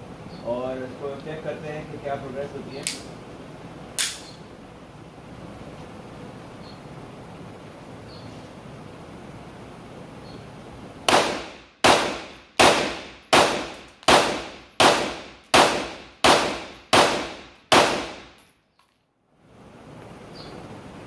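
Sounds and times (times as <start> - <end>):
pistol shots rapid fire: 11.1 - 18.3.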